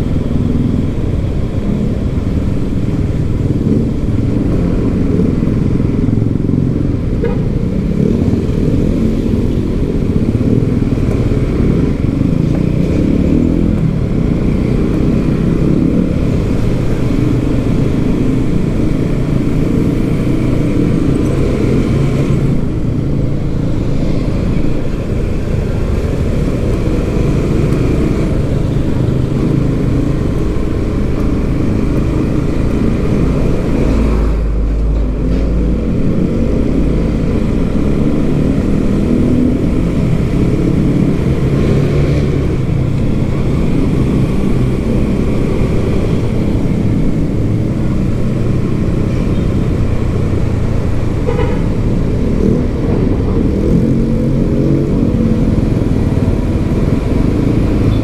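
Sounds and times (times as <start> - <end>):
motorcycle engine running: 0.0 - 58.0
road and wind rumble: 0.0 - 58.0.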